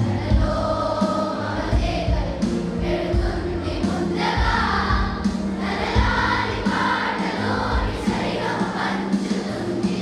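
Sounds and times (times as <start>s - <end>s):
children's choir singing: 0.0s - 10.0s.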